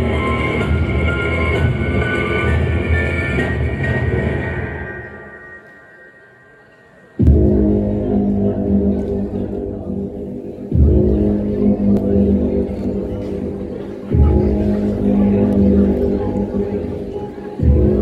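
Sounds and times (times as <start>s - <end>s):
dark music with heavy chords: 0.0s - 18.0s.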